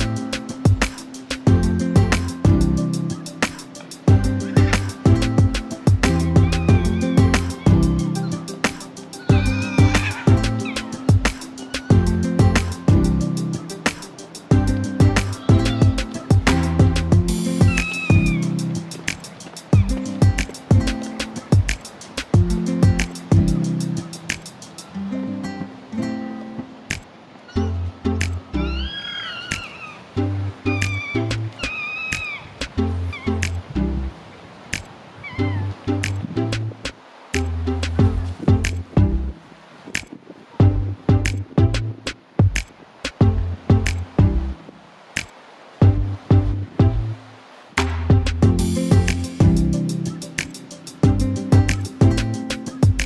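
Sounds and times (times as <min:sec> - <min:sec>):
music with steady drum beat: 0:00.0 - 0:24.9, 0:37.4 - 0:39.3, 0:40.0 - 0:44.4, 0:45.8 - 0:47.0, 0:47.8 - 0:53.0
fox whining and squeaking: 0:06.1 - 0:12.8, 0:14.7 - 0:16.4, 0:17.5 - 0:18.7, 0:27.4 - 0:27.9, 0:28.6 - 0:30.0, 0:30.7 - 0:32.5, 0:33.1 - 0:33.6, 0:35.2 - 0:35.7.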